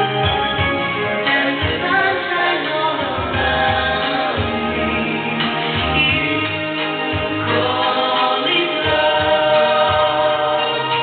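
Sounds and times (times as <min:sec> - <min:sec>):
karaoke backing track: 0:00.0 - 0:11.0
man singing karaoke: 0:01.0 - 0:11.0.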